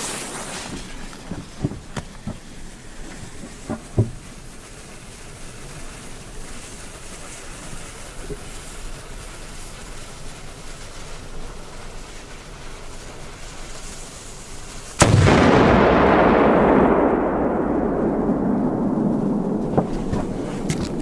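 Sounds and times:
firecracker bang with rumbling tail: 15.0 - 21.0.

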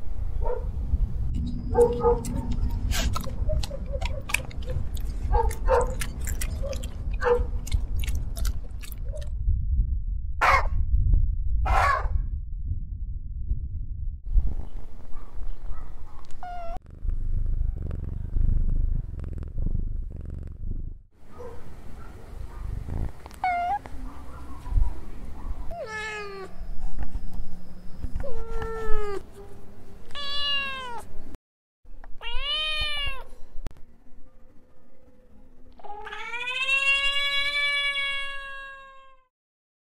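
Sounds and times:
low rumbling noise: 0.0 - 25.8
cat meowing: 16.4 - 16.8, 23.4 - 23.9, 25.7 - 26.6, 28.2 - 29.2, 30.1 - 31.1, 32.2 - 33.3, 35.8 - 39.3.

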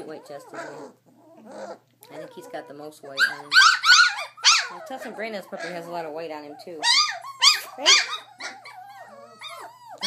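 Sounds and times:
high-pitched puppy cries: 0.0 - 10.0
puppies whining: 0.0 - 10.0.

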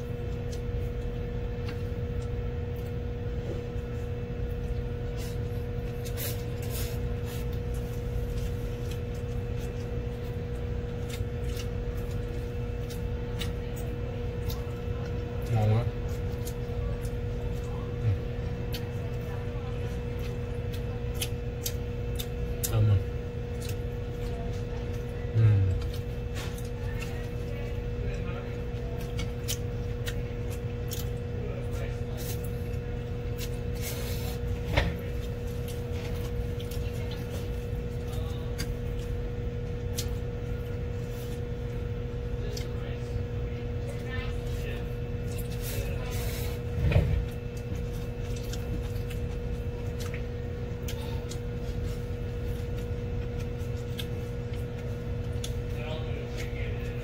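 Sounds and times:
steady low hum: 0.0 - 57.0
eating mouth sounds: 20.2 - 27.2
man's low vocal sounds: 25.3 - 25.8.

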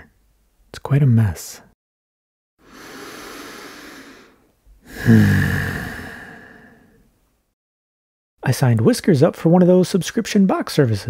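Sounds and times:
person sighing: 2.6 - 7.0.

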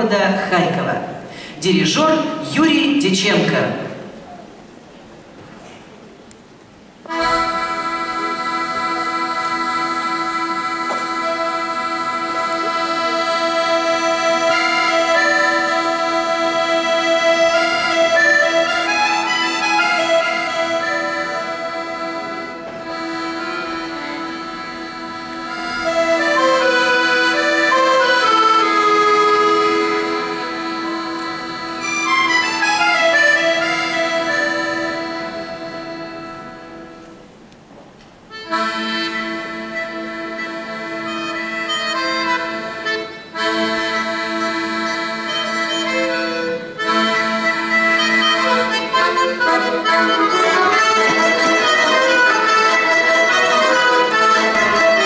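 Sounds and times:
accordions holding a sustained chord: 6.7 - 37.5, 38.3 - 55.0.

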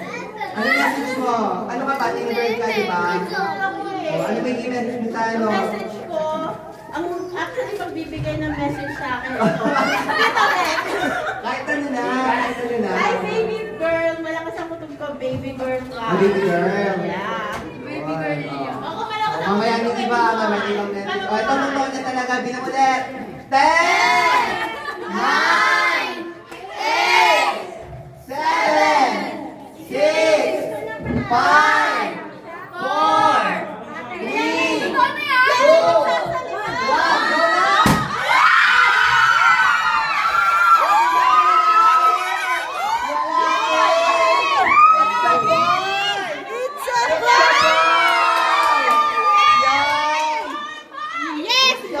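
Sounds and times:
people cheering and shouting: 32.8 - 52.0.

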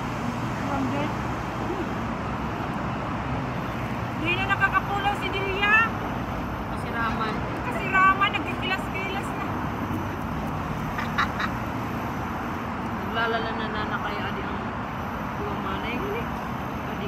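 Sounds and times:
city traffic hum: 0.0 - 17.0.

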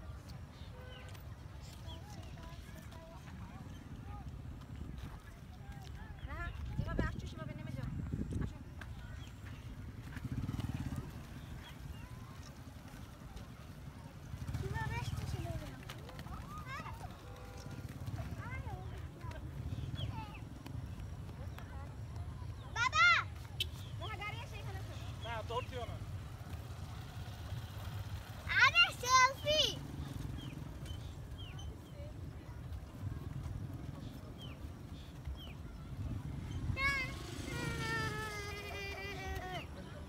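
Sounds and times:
children shouting and squealing: 22.7 - 23.5, 28.4 - 29.8, 36.5 - 40.0
child whining cry: 37.5 - 39.7.

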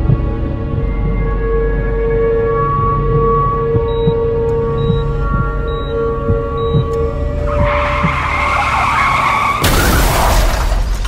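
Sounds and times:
dark music drone: 0.0 - 10.1
car tyres screeching: 7.3 - 10.2
loud crash: 9.6 - 11.0.

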